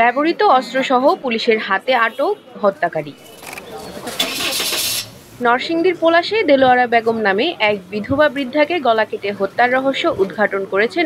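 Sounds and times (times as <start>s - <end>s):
street noise: 0.0s - 11.0s
loud even hiss: 4.0s - 5.5s.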